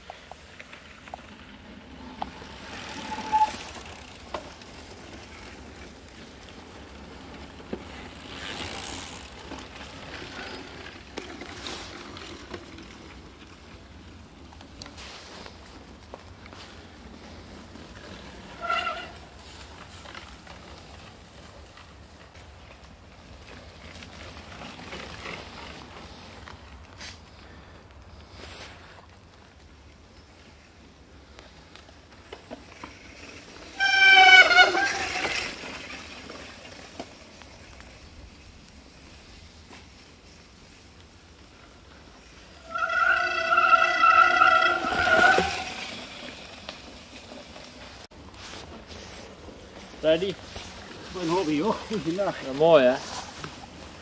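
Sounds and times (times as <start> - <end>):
bike disc brakes squealing: 2.2 - 4.4, 18.2 - 20.1, 33.2 - 36.2, 42.2 - 47.8.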